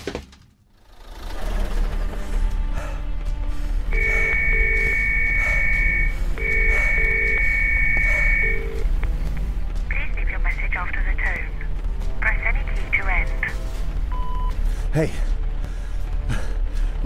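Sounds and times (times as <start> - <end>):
background music: 0.7 - 17.0
telephone ringing tone: 3.9 - 8.8.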